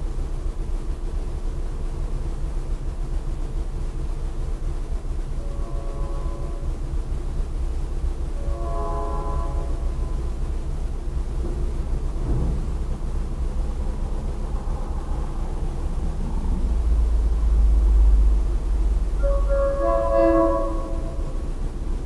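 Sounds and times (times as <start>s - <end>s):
steady low rumble: 0.0s - 22.0s
distant train horn blasts: 5.2s - 11.9s, 16.6s - 22.0s.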